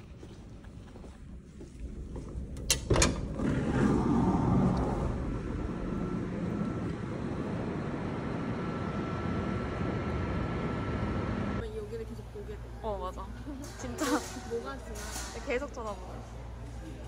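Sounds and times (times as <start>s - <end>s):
low rumble with thin whine: 1.8s - 12.8s.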